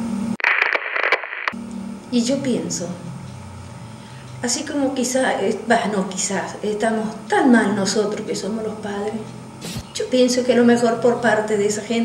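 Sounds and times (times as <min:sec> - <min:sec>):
crackling radio static: 0:00.4 - 0:01.6, 0:09.6 - 0:09.9.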